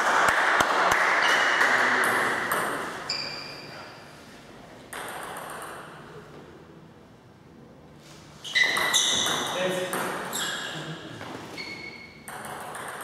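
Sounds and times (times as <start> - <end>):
table tennis ball bouncing: 0.0 - 3.5, 4.9 - 6.0, 8.5 - 10.6, 11.2 - 13.0.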